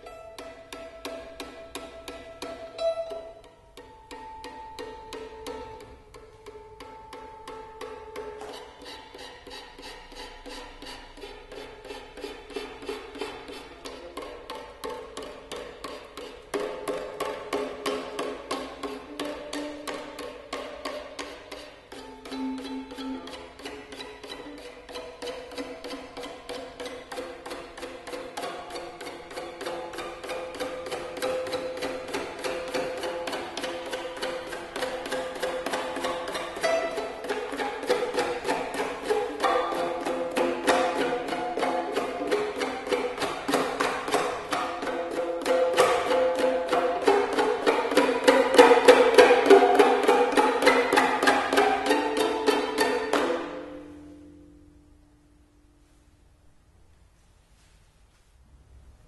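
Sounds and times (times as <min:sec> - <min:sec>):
violin strings struck percussively: 0:00.0 - 0:55.5.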